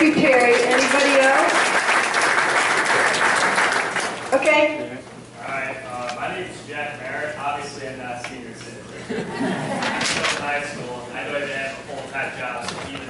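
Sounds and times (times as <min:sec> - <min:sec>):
audience applauding: 0:00.0 - 0:04.4.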